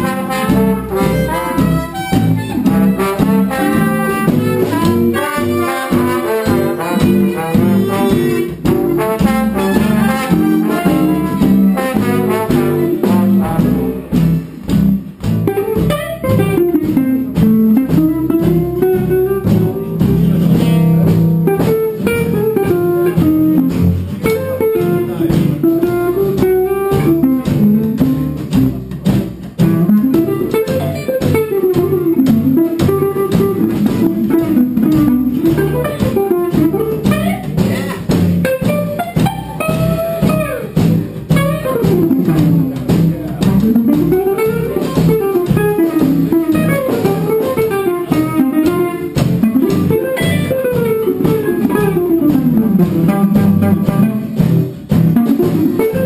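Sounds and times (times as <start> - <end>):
double bass: 0.0 - 56.0
guitar strumming: 0.0 - 56.0.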